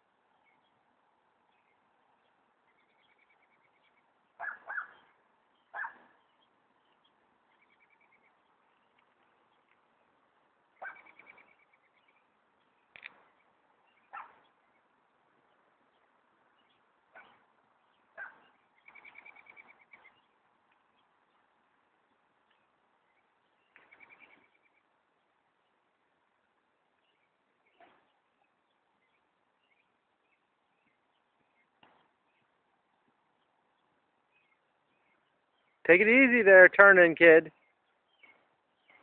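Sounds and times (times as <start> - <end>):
faint high bird chirping: 1.5 - 9.8, 10.8 - 21.5, 22.1 - 25.8
short sharp animal calls: 5.7 - 6.2.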